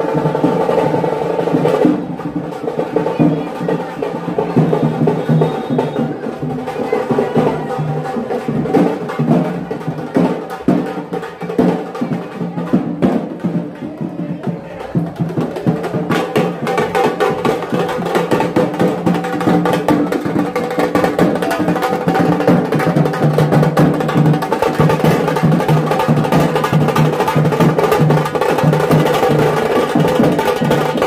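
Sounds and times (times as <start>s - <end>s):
street drum band playing: 0.0s - 31.0s.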